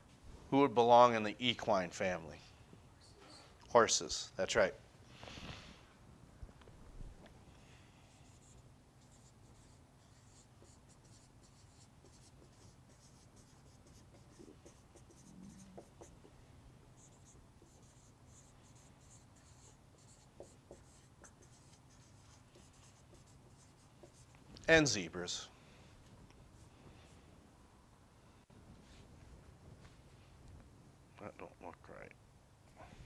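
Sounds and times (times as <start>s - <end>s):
marker squeaking on whiteboard: 8.4s - 16.3s, 17.0s - 24.4s.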